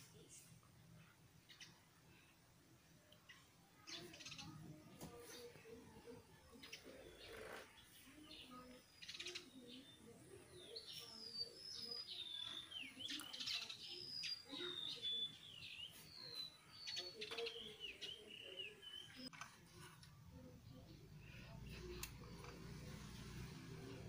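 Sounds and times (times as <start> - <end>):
bird chirping: 3.2 - 19.3.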